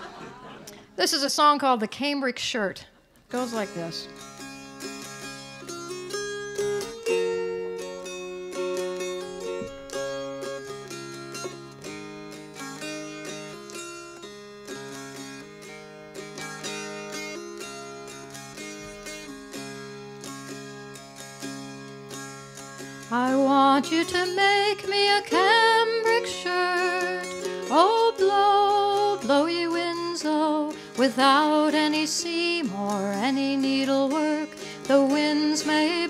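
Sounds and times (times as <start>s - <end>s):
mountain dulcimer melody: 3.3s - 36.0s.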